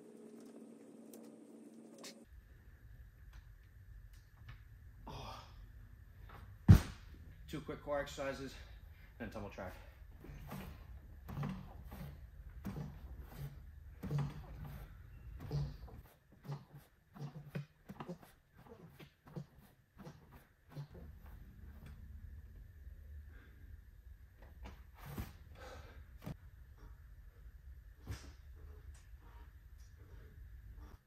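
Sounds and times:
rhythmic effortful exhales: 25.0 - 27.4.

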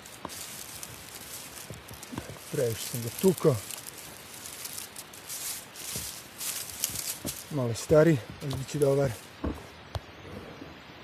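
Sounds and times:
dry leaves rustling and crackling: 0.0 - 9.6.

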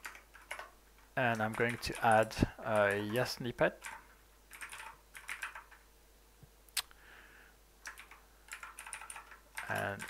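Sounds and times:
typing on computer keyboard: 0.0 - 3.2, 3.8 - 5.8, 7.8 - 10.0.

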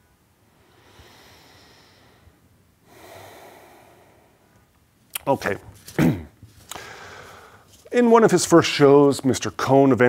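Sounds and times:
man breathing: 0.4 - 4.7, 6.6 - 7.8.

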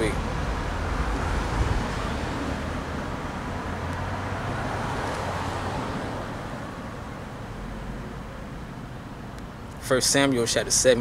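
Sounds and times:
vehicle passing: 0.0 - 9.2.

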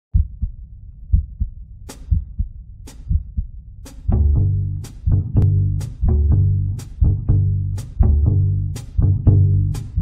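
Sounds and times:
heartbeat thumps: 0.1 - 10.0.

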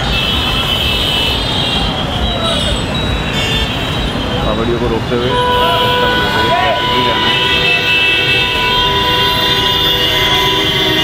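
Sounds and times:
car and motorcycle engines: 0.0 - 11.0.

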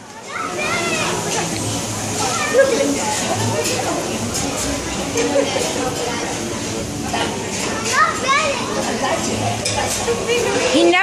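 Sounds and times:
restaurant hubbub of voices: 0.0 - 11.0
child's high voice: 0.2 - 1.2, 2.2 - 2.9, 7.8 - 8.8.

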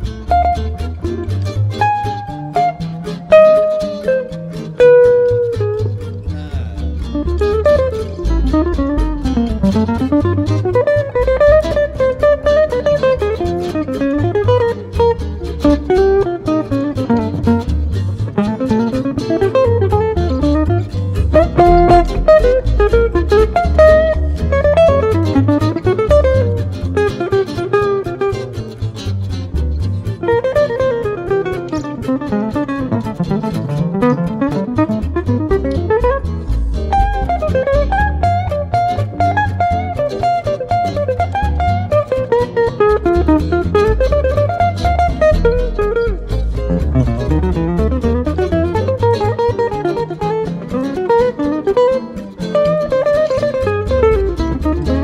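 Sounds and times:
plucked upright bass: 0.0 - 55.0
fast single-note melody line: 21.3 - 26.5.

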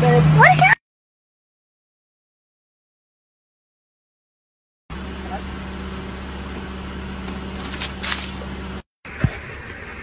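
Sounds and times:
vehicle engine idling: 4.9 - 10.0.

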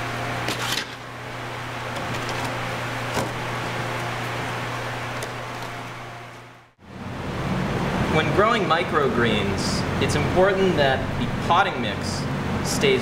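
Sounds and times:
ventilation fan hum: 0.0 - 13.0.

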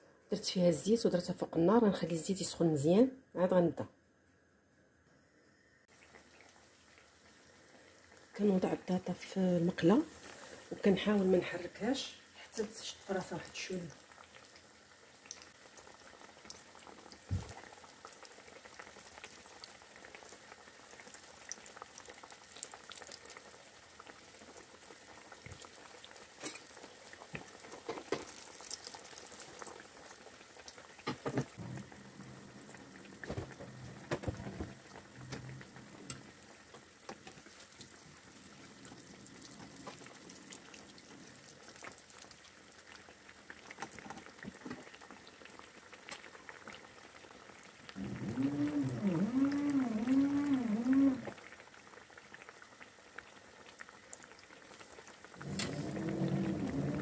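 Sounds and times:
oil sizzling and bubbling: 5.4 - 57.0
oil popping and crackling: 13.5 - 57.0.

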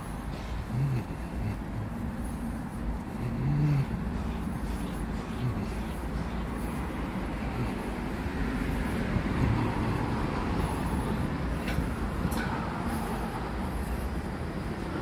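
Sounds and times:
low urban rumble: 0.0 - 15.0.

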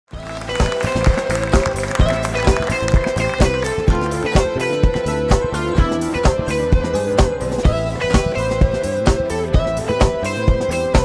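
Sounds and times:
drums: 0.1 - 11.0
keyboard: 0.1 - 11.0.

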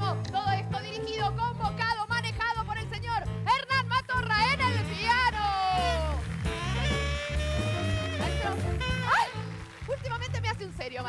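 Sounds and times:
live band music: 0.0 - 11.0
woman whooping: 9.0 - 9.4.

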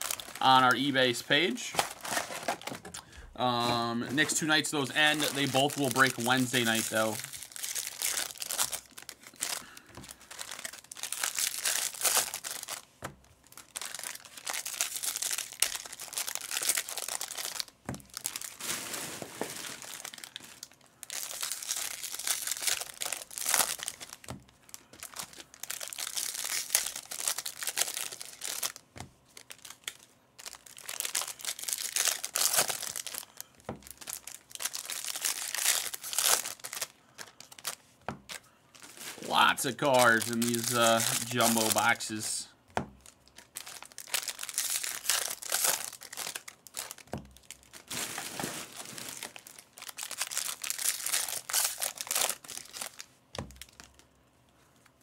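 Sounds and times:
foil wrappers crinkling and tearing: 0.0 - 54.1.

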